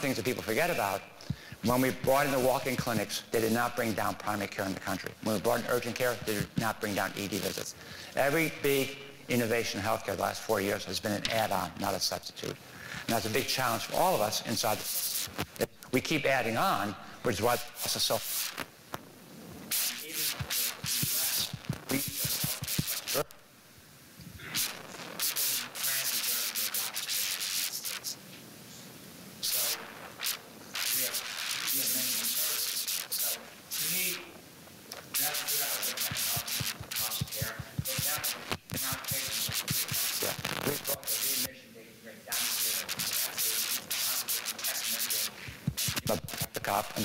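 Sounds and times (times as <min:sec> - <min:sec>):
man lecturing: 0:00.0 - 0:18.3, 0:19.7 - 0:23.3, 0:30.9 - 0:34.3, 0:35.0 - 0:41.6, 0:42.3 - 0:47.0
clothing rubbing on microphone: 0:12.8 - 0:15.7, 0:17.8 - 0:23.3, 0:24.2 - 0:34.1, 0:35.0 - 0:41.5, 0:42.3 - 0:47.0.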